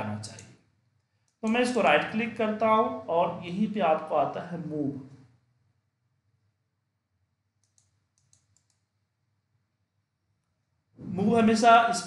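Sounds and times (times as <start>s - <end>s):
faint computer mouse clicks: 7.6s - 8.9s.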